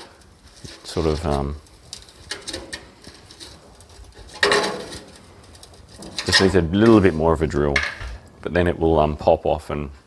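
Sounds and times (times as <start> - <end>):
metal creak: 0.0 - 8.3.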